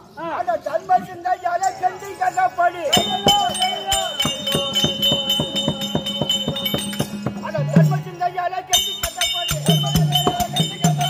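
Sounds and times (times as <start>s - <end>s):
metallic jingling: 0.0s - 11.0s
barrel drum beating: 2.9s - 8.0s, 8.8s - 11.0s.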